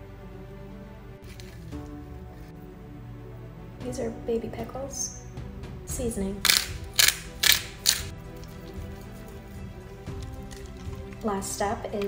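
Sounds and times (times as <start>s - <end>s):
background music: 0.0s - 12.0s
hand spice grinder grinding: 6.5s - 8.9s.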